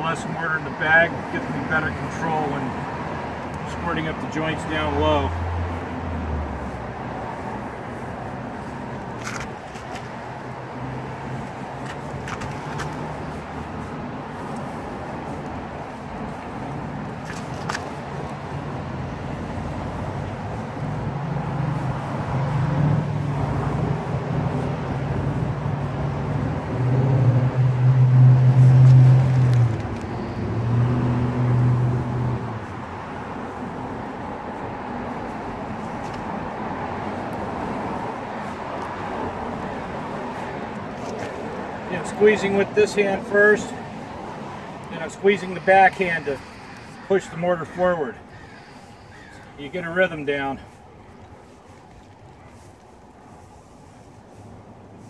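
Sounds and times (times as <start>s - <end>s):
motor vehicle engine hum: 0.0s - 55.0s.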